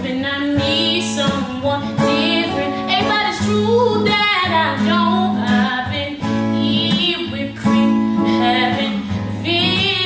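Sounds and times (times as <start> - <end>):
strummed acoustic guitar: 0.0 - 10.0
woman singing soulful melody: 0.0 - 10.0.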